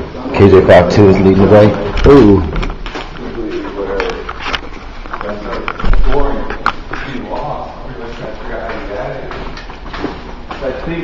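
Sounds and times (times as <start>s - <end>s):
footsteps on hard floor: 5.7s - 11.0s.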